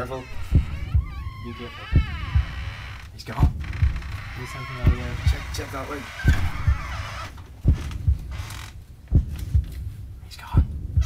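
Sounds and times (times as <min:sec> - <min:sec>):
heartbeat double thumps: 0:00.0 - 0:11.0.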